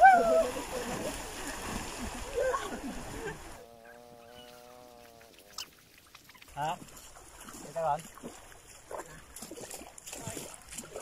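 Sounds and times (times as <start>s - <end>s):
water splashing: 0.0s - 3.7s, 4.4s - 11.0s.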